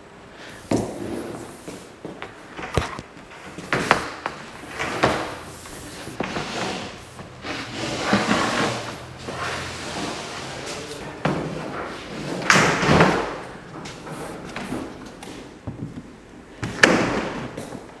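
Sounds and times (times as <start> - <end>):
tubing scraping on concrete floor: 0.7 - 15.5.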